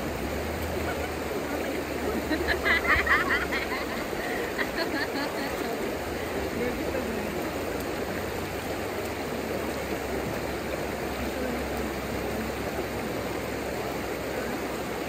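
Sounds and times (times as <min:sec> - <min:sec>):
river rushing over rocks: 0:00.0 - 0:15.0.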